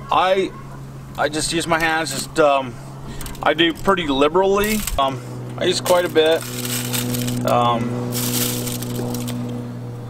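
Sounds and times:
steady low hum: 0.0 - 10.0
hands rubbing seasoning on skin: 5.8 - 9.4.

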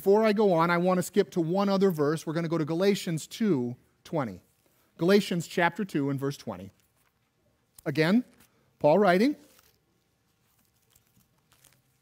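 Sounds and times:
thin pages turning: 9.4 - 12.0.

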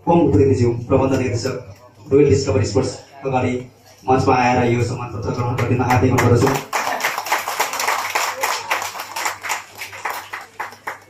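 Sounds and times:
group applause: 5.5 - 11.0.

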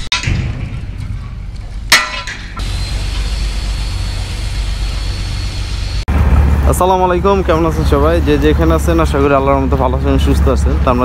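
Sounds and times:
loud low hum: 0.0 - 11.0
engine running with low rumble: 0.6 - 11.0
man's voice: 6.7 - 11.0.

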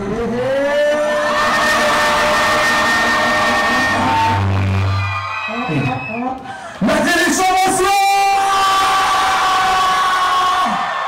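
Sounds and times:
deep bass note: 1.6 - 5.1.

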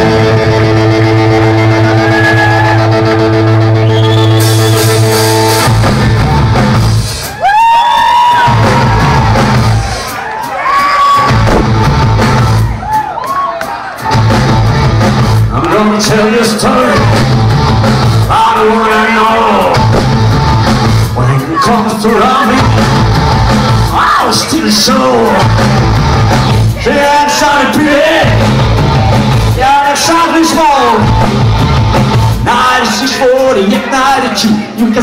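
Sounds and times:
rock band playing: 0.0 - 35.0.

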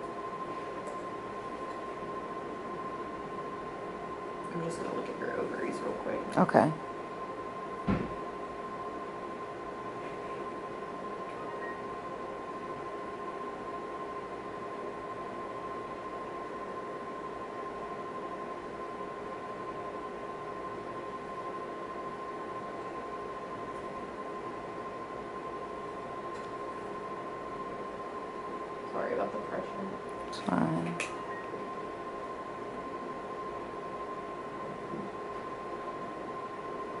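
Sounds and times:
machine fan hum: 0.0 - 37.0
thin high whine: 0.0 - 37.0.

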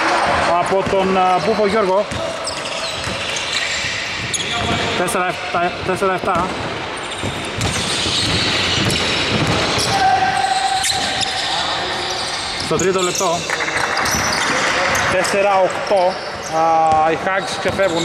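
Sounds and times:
players' voices: 0.0 - 18.0
basketball bouncing on hardwood: 6.4 - 9.9.

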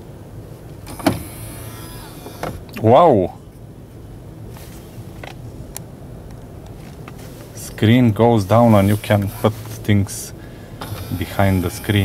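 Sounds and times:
electric motor whir: 0.9 - 2.6, 10.8 - 12.0.

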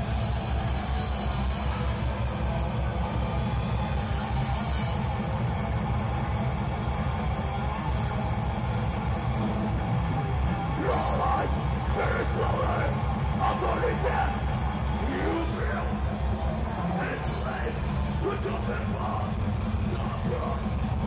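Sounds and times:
heavy metal band playing live: 0.0 - 21.0.

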